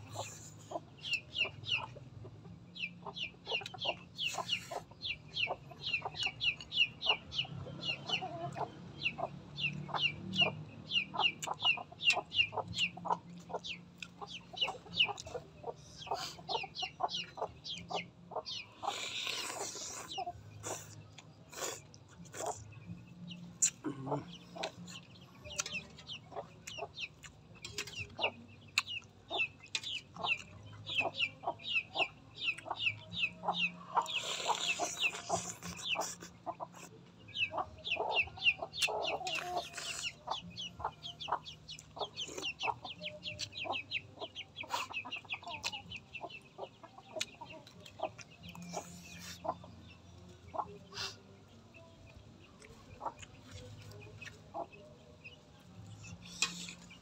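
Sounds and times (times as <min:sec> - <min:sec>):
chicks peeping: 0:00.0 - 0:57.0.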